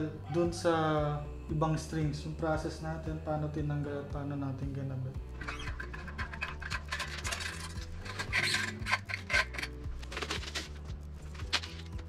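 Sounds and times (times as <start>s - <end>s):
soft background music: 0.0s - 12.0s
metallic clicks and scraping: 5.3s - 12.0s.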